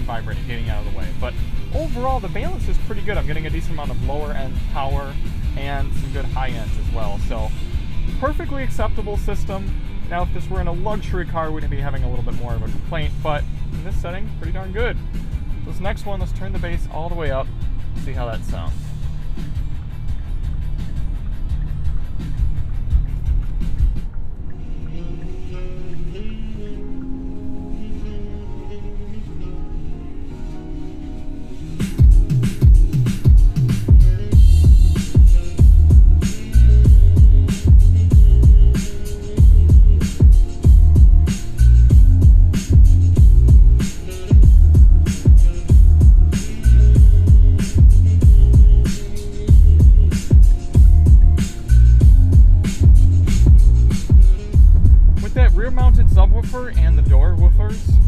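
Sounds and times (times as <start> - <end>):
bass-heavy electronic music: 0.0 - 58.0.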